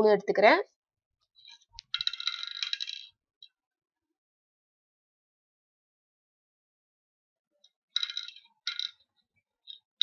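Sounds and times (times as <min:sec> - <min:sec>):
seeds clattering into wooden board: 0:01.4 - 0:03.1, 0:08.0 - 0:09.0.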